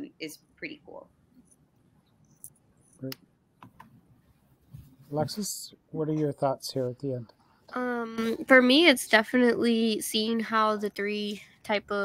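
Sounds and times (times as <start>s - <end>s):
person speaking a word: 5.1s - 7.2s.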